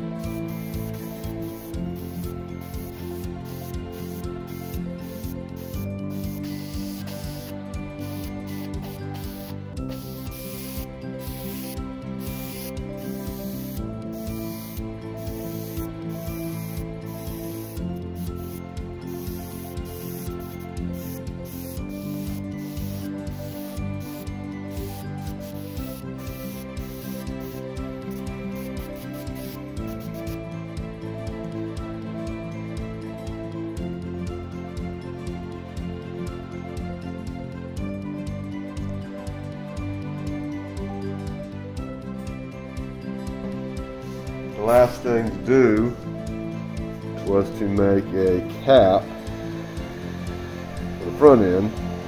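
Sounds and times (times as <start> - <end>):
background music: 0.0 - 52.0
airbrush hissing bursts: 0.1 - 30.4, 43.9 - 45.4, 46.0 - 52.0.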